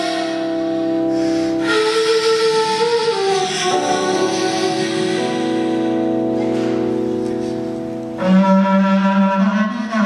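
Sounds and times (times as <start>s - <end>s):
end-blown wooden flute: 0.0s - 10.0s.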